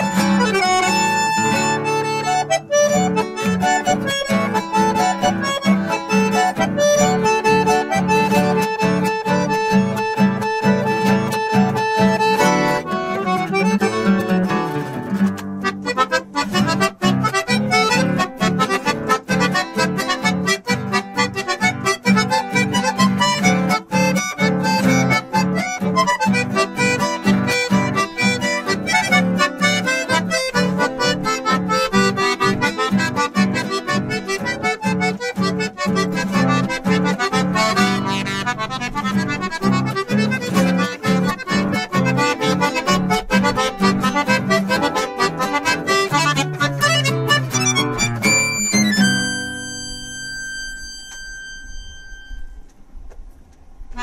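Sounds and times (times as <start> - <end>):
button accordion: 0.0 - 52.7
acoustic guitar chords: 0.0 - 53.2.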